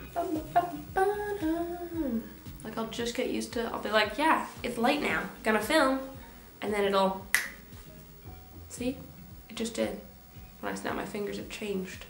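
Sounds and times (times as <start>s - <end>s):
woman humming: 0.0s - 2.4s.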